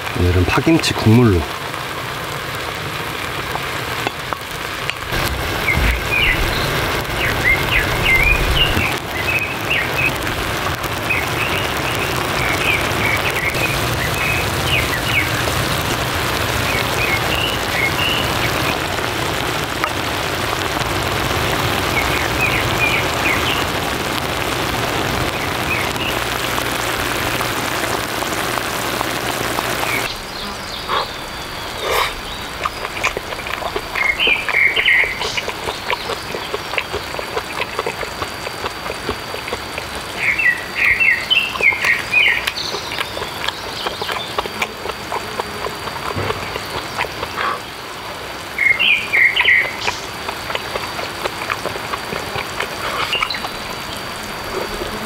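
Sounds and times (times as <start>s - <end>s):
hot pot bubbling and hissing: 0.0s - 55.0s.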